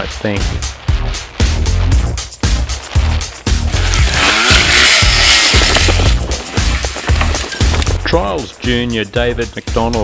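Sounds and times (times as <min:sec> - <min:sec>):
background music with steady beat: 0:00.0 - 0:10.0
motorcycle engine revving: 0:03.7 - 0:07.7.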